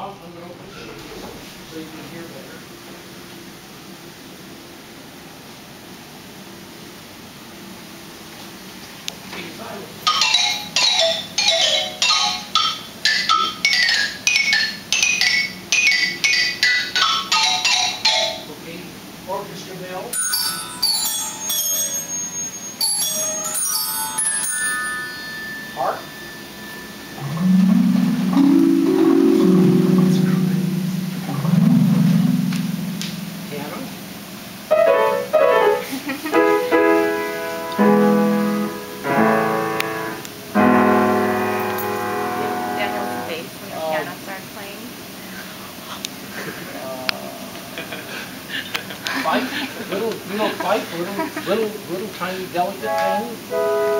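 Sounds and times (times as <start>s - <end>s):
bright struck xylophone notes: 10.1s - 18.5s, 20.1s - 34.3s
light high tinkles: 20.1s - 27.4s
deep sustained organ chords: 25.7s - 34.7s, 37.8s - 43.6s.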